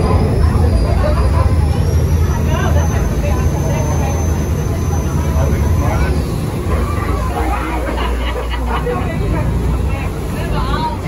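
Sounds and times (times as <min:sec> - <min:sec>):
chatter of passengers: 0:00.0 - 0:11.0
ferry engine rumble: 0:00.0 - 0:11.0.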